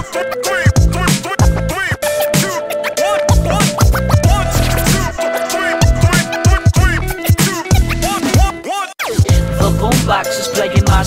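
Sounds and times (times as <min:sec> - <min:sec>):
turntable scratching: 0:00.0 - 0:11.0
drum beat: 0:00.6 - 0:10.2, 0:10.8 - 0:11.0.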